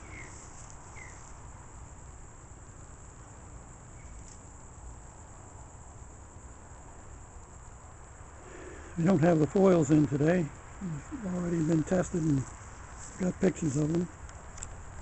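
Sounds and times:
crickets chirring: 0:00.0 - 0:15.0.

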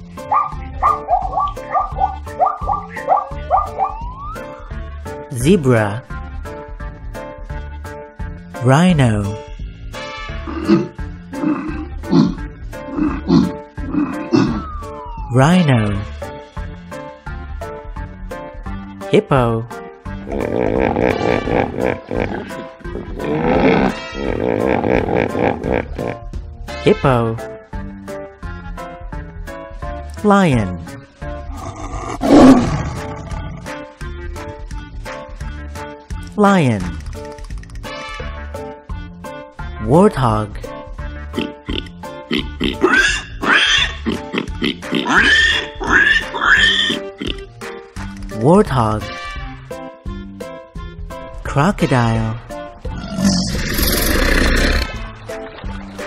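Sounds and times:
background music: 0:00.0 - 0:56.0
hippopotamus call: 0:00.3 - 0:04.2
pig-like animal calls: 0:00.3 - 0:04.2, 0:10.5 - 0:14.8, 0:31.5 - 0:33.8, 0:41.4 - 0:47.4, 0:52.9 - 0:55.0.

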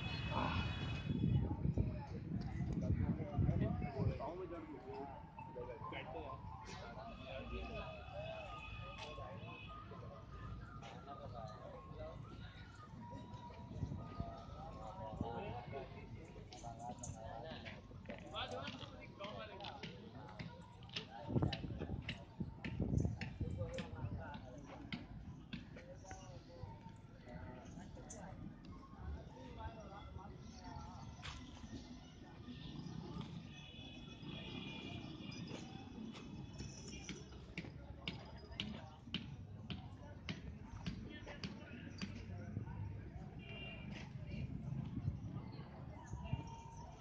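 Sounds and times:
faint people talking: 0:00.0 - 0:47.0.

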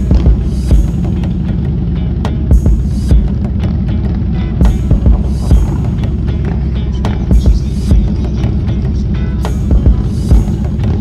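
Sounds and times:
motorcycle engines throbbing: 0:00.0 - 0:11.0
music playing: 0:00.0 - 0:11.0.

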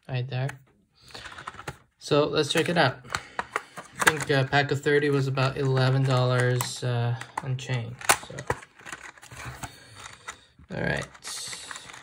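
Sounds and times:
plastic crinkling: 0:05.2 - 0:12.0.

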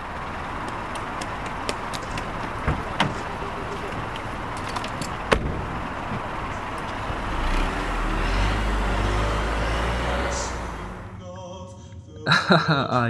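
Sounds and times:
street noise: 0:00.0 - 0:11.7
car engine rumble: 0:00.0 - 0:12.7.

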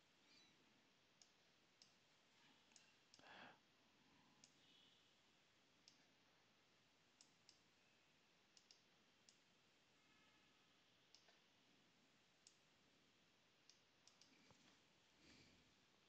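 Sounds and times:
computer mouse clicks: 0:04.4 - 0:04.7, 0:08.6 - 0:09.4, 0:11.1 - 0:11.4, 0:13.6 - 0:14.7
soft rustle: 0:14.3 - 0:15.7.

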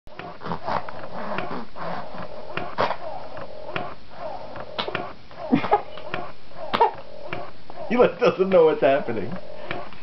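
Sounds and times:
baby laughing: 0:06.7 - 0:07.0.

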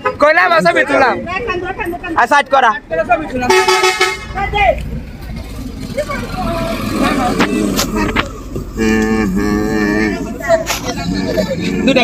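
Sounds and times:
car engine idling: 0:00.0 - 0:12.0
vehicle horn: 0:03.5 - 0:04.4.

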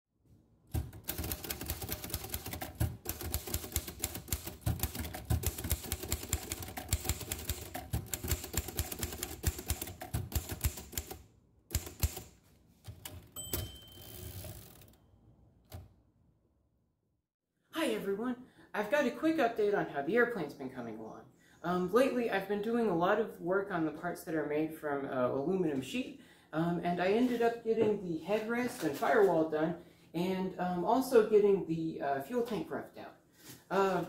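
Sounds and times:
typewriter keys striking: 0:00.7 - 0:14.9
short ringing tone: 0:13.4 - 0:14.8.

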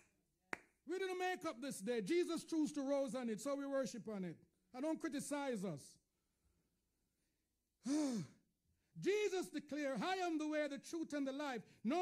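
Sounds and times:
man sighing: 0:07.8 - 0:08.4.

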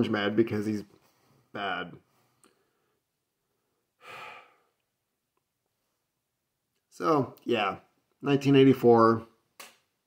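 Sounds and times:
man sighing: 0:04.0 - 0:04.8.

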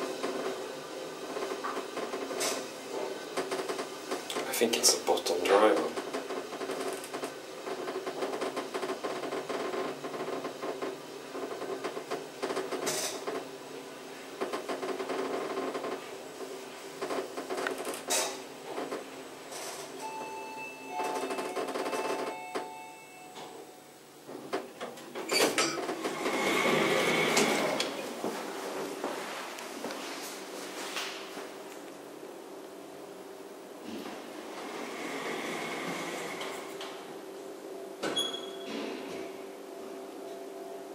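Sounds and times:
lift humming: 0:00.0 - 0:29.2, 0:32.0 - 0:38.6
lift doors sliding open: 0:24.2 - 0:28.8, 0:33.8 - 0:37.2, 0:38.0 - 0:39.5.

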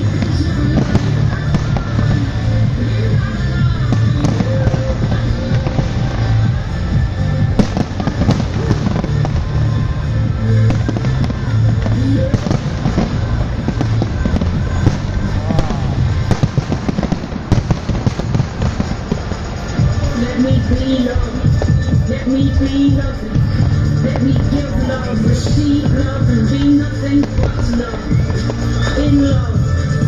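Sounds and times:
fireworks bursting and crackling: 0:00.0 - 0:30.0
music with heavy bass: 0:00.0 - 0:30.0.

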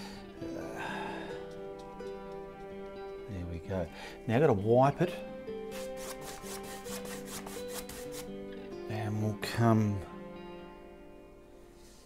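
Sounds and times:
soft background music: 0:00.0 - 0:12.0
paintbrush scrubbing on canvas: 0:05.7 - 0:08.3.

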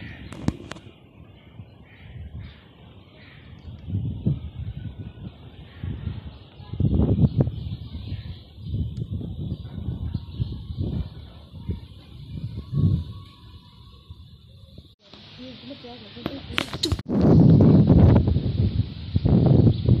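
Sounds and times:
wind buffeting microphone: 0:00.0 - 0:15.0, 0:16.2 - 0:20.0.

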